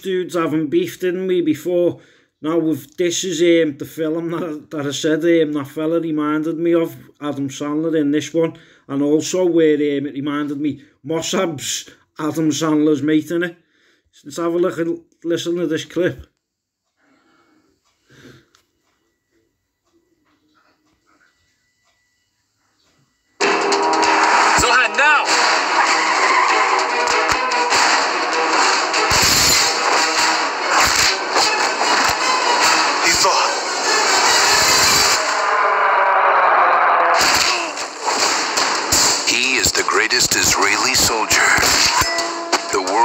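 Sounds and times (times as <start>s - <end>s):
heavy hits: 23.4s - 35.6s, 37.1s - 43.0s
loud trailer music: 23.4s - 35.8s
action sound effects: 23.4s - 43.0s.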